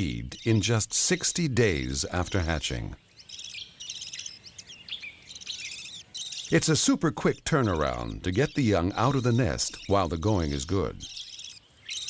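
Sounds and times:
budgerigars chattering: 0.0 - 12.0.

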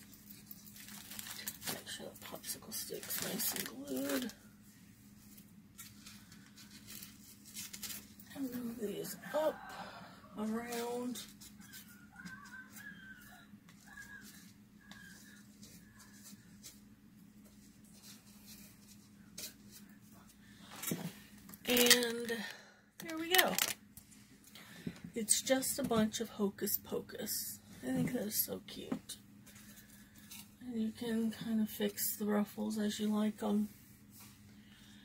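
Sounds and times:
ribbon rustling: 0.0 - 9.2, 10.4 - 24.2
low steady hum: 0.0 - 35.0
person speaking: 1.7 - 4.4, 8.3 - 9.7, 10.4 - 11.2, 21.6 - 23.8.

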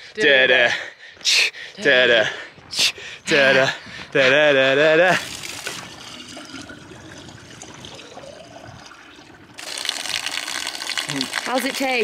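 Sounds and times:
water pouring from metal pipe: 5.1 - 12.0.

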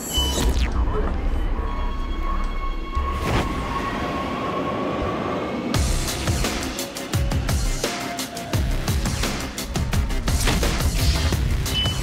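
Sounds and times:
background music: 0.0 - 12.0
train high whine: 1.2 - 8.6.

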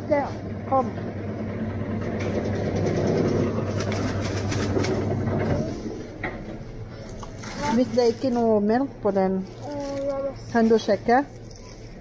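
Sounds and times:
low machine hum: 0.0 - 12.0
plastic packaging crackling: 3.7 - 5.1, 7.1 - 8.5, 9.4 - 11.5.

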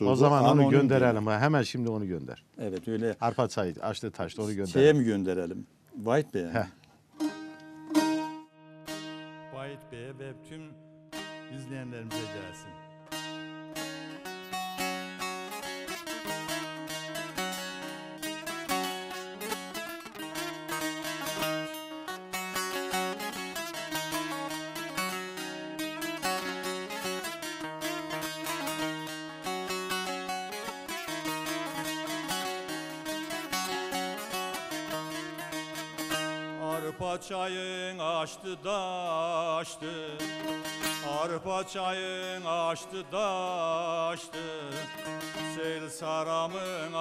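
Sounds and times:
saz strumming a melody: 7.0 - 47.0
person singing: 36.4 - 47.0.

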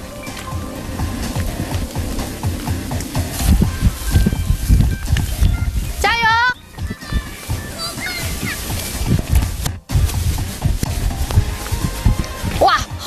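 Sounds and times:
background music: 0.0 - 13.0
flames rumbling: 0.0 - 13.0.

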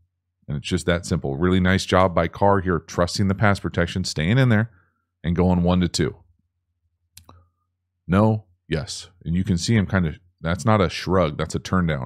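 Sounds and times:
person speaking: 8.1 - 12.0.

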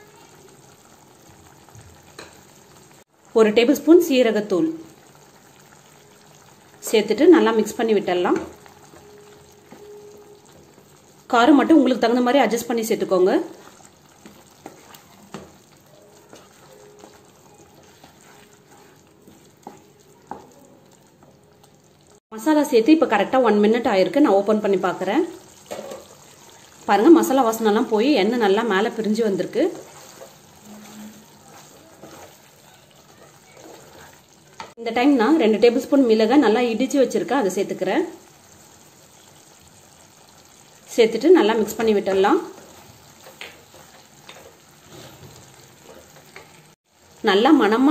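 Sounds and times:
faint sizzle: 0.0 - 47.9
spatula stirring gravy: 13.5 - 21.8, 29.0 - 34.8, 41.7 - 47.2
spatula knocking pan: 13.7 - 20.6.

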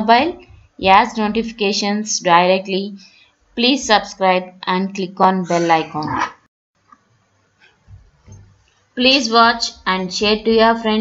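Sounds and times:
woman's voice: 0.0 - 3.0, 3.6 - 6.4, 9.0 - 11.0.

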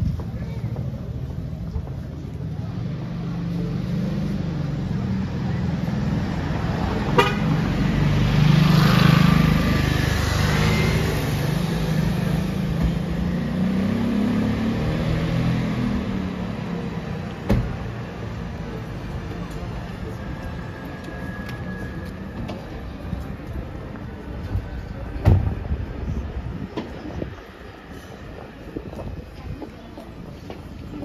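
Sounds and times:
street traffic engine rumble: 0.0 - 31.0.

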